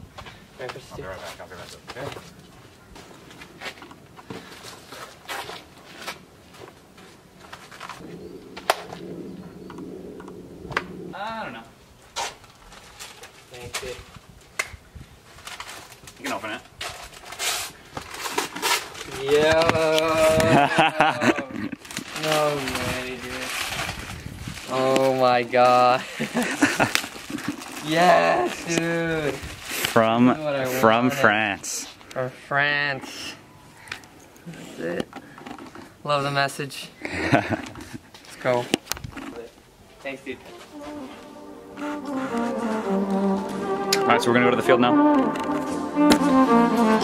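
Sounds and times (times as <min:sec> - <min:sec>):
indistinct voices talking: 0:40.4 - 0:47.0.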